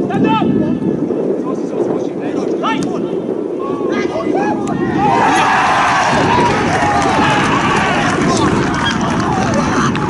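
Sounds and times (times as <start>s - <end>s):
crowd shouting and cheering: 3.7s - 10.0s.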